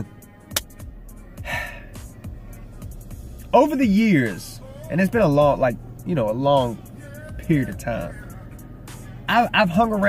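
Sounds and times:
man breathing in: 0:01.3 - 0:02.2.

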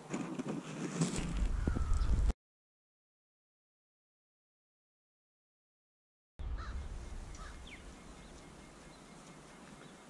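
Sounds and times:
microphone handling rustle: 0:00.0 - 0:02.3.

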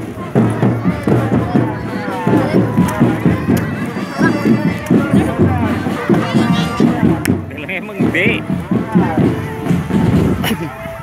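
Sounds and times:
marching drum band: 0:00.0 - 0:11.0
people's voices: 0:00.0 - 0:11.0.

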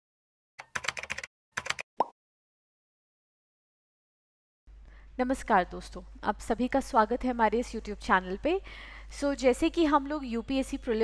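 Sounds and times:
computer keyboard typing: 0:00.6 - 0:01.9.

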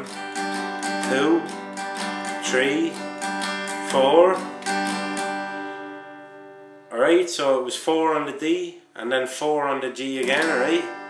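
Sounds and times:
acoustic guitar chord ringing: 0:00.0 - 0:07.2, 0:10.2 - 0:11.0.

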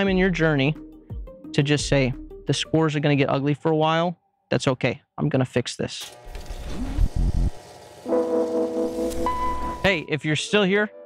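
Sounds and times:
gong-like sustained chord: 0:08.0 - 0:09.9.

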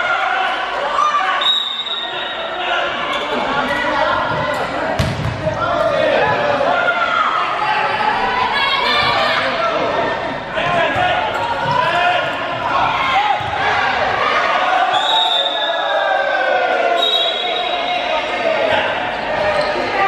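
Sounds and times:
players shouting: 0:00.0 - 0:20.0
ball bouncing on wooden floor: 0:05.0 - 0:05.4.

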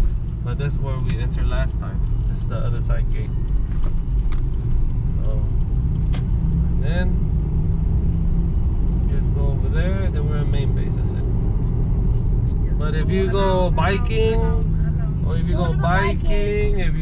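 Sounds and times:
car engine and tyres rumbling: 0:00.0 - 0:17.0.

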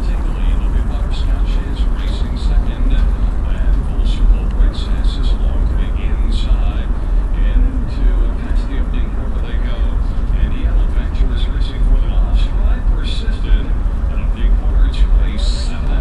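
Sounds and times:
car engine and tyres rumbling: 0:00.0 - 0:16.0
indistinct voice talking: 0:00.0 - 0:16.0.

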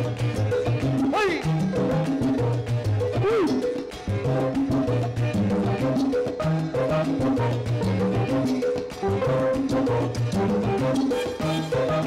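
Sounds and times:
live salsa band playing: 0:00.0 - 0:12.0.

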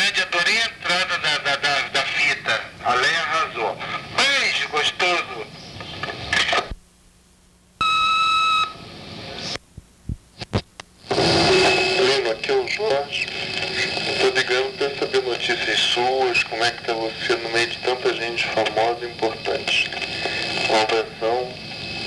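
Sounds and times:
caller's voice over phone: 0:00.0 - 0:05.5, 0:12.0 - 0:21.6
answering machine beep: 0:07.8 - 0:08.8.

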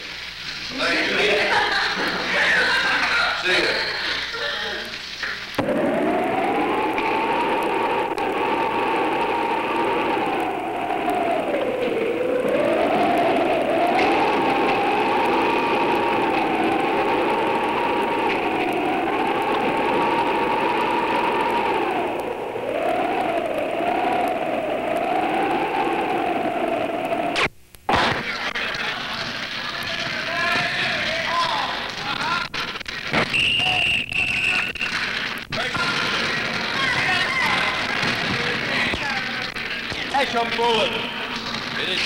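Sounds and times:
steady hiss: 0:00.0 - 0:42.0
wavering whine: 0:05.2 - 0:42.0.

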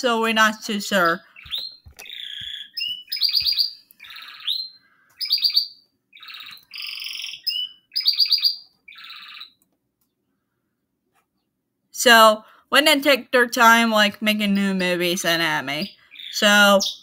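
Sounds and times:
bird chirping and trilling: 0:00.4 - 0:09.6, 0:15.7 - 0:17.0.

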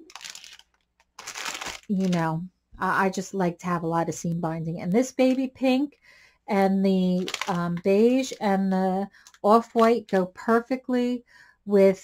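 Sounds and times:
plastic bag crinkling: 0:00.0 - 0:02.3, 0:07.1 - 0:07.8.

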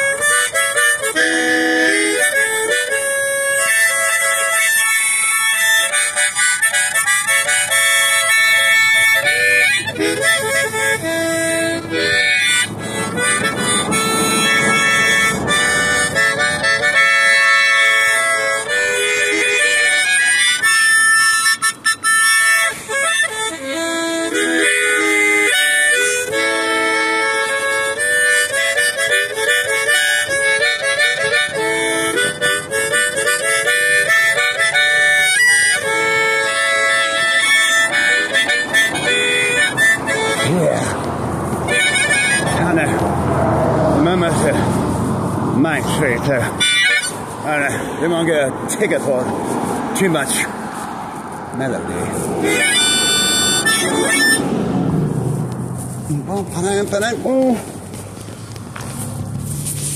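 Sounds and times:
harmonica playing: 0:00.0 - 0:59.9.

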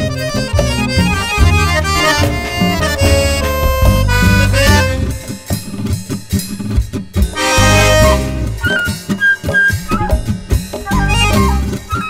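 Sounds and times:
accordion melody and chords: 0:00.0 - 0:12.0.

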